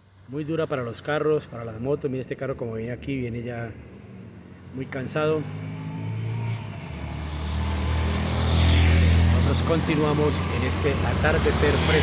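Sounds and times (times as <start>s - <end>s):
motorcycle engines: 0.0s - 12.0s
car engine labouring uphill: 2.6s - 12.0s.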